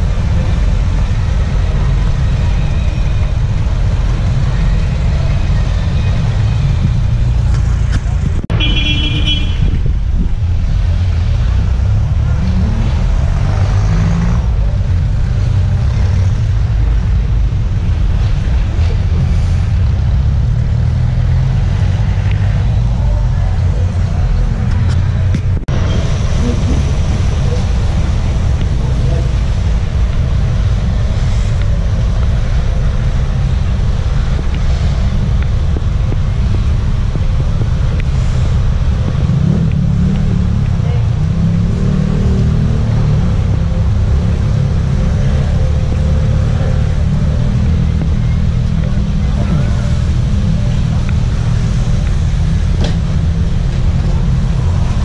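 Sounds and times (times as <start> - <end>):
street traffic rumble: 0.0 - 55.0
vehicle horn toot: 8.5 - 9.8.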